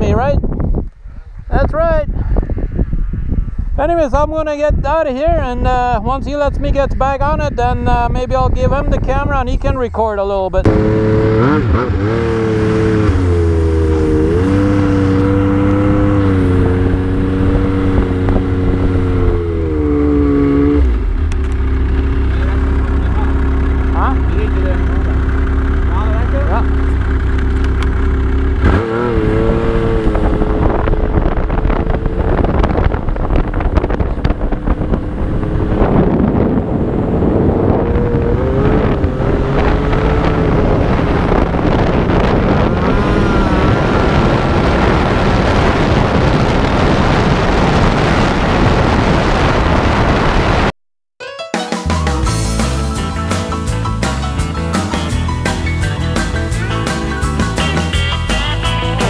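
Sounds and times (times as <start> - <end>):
snowmobile engine running: 10.6 - 50.7.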